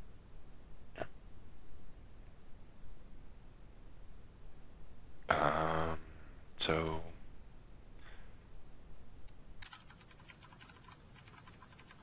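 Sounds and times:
rapid typing on keyboard: 0:09.6 - 0:12.0.

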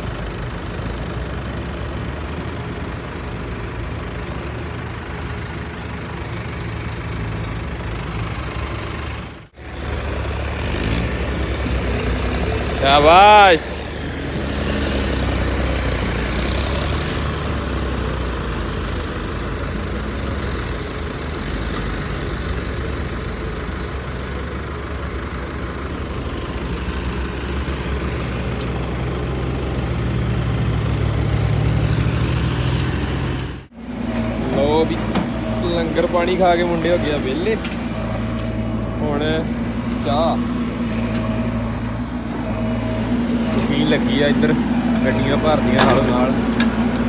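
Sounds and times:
tractor diesel engine rumbling: 0:00.0 - 0:47.0
voices: 0:11.3 - 0:17.6, 0:33.9 - 0:47.0.

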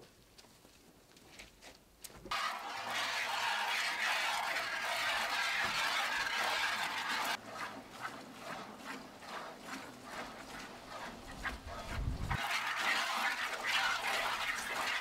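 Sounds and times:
milk squirting into buckets: 0:02.3 - 0:15.0.

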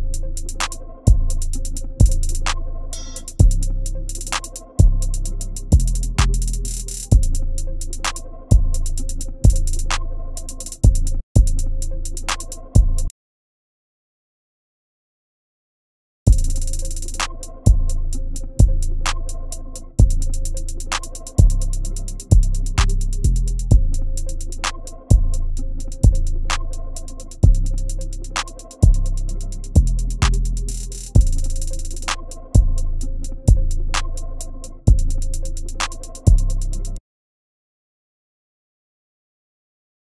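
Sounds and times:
held synth melody: 0:00.0 - 0:06.2
fast hi-hat pattern: 0:00.0 - 0:13.1, 0:16.3 - 0:37.0
kick-bass notes: 0:00.0 - 0:13.1, 0:16.3 - 0:37.0
deep bass kick: 0:02.0 - 0:02.3, 0:10.8 - 0:11.8, 0:16.3 - 0:16.7, 0:20.0 - 0:20.4, 0:22.3 - 0:24.2, 0:25.1 - 0:26.4, 0:27.4 - 0:27.8, 0:28.8 - 0:30.5, 0:31.1 - 0:31.6, 0:32.6 - 0:33.9, 0:34.9 - 0:35.2, 0:36.3 - 0:36.6.

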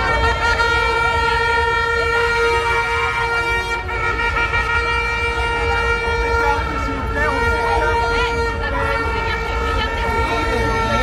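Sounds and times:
horn long steady note: 0:00.0 - 0:11.0.

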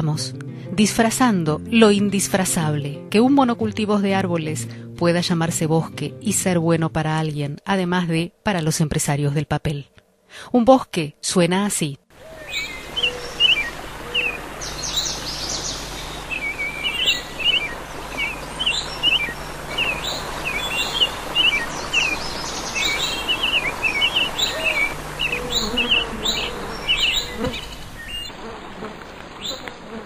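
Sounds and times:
steady background hiss: 0:12.1 - 0:29.9
small birds chirping: 0:12.2 - 0:28.4.

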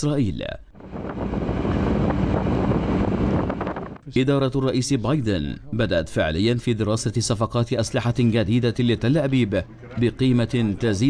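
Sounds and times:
military vehicle rumbling: 0:00.8 - 0:04.0
wind buffeting microphone: 0:00.8 - 0:04.0.

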